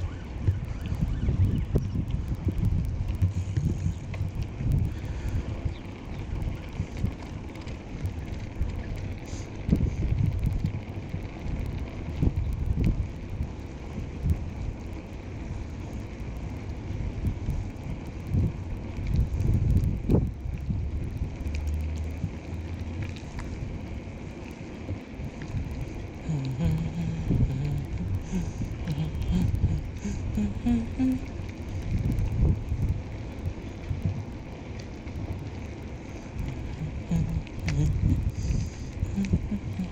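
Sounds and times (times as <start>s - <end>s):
wind buffeting microphone: 0.0s - 39.9s.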